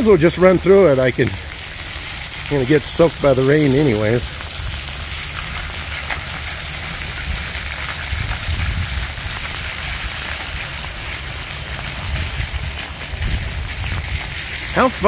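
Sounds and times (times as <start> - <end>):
fountain jets spraying: 0.0 - 15.0
rain on umbrella and pavement: 0.0 - 15.0.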